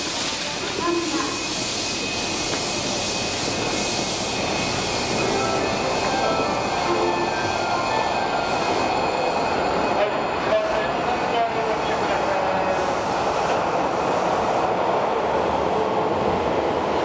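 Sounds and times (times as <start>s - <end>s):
electric train rumble: 0.0s - 17.0s.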